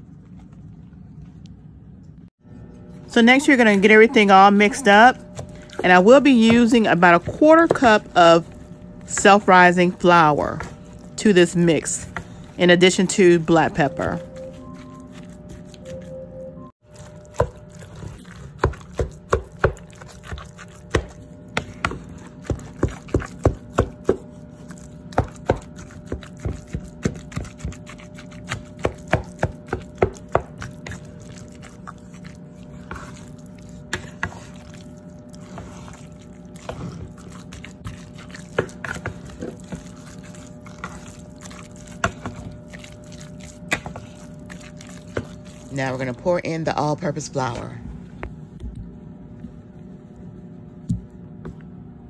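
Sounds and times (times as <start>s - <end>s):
mixture squelching in bowl: 2.6s - 47.8s.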